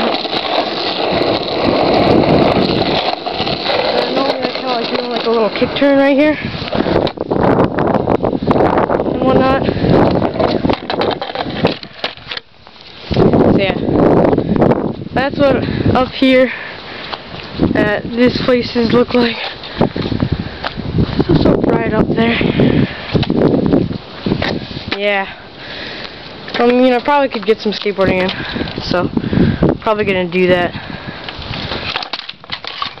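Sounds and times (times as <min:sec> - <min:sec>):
skateboard clacks: 0:00.0 - 0:07.2, 0:10.0 - 0:12.5
skateboard wheels rumbling on concrete: 0:00.0 - 0:33.0.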